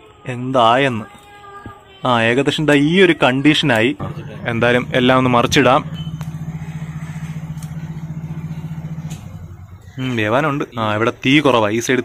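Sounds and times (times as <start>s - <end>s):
motor pulsing hum: 4.0s - 10.2s.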